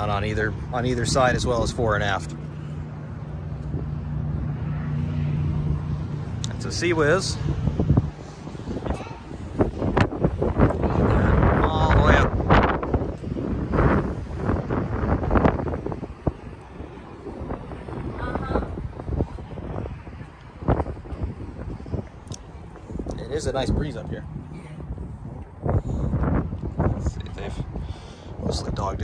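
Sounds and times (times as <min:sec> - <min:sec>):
wind buffeting microphone: 0:00.0 - 0:29.0
faint voices: 0:08.3 - 0:10.0.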